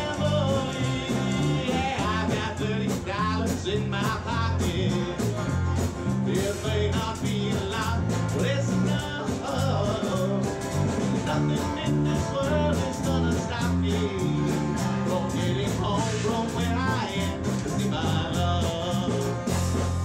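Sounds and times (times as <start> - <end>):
bass notes: 0.0 - 20.0
strummed acoustic guitars: 0.0 - 20.0.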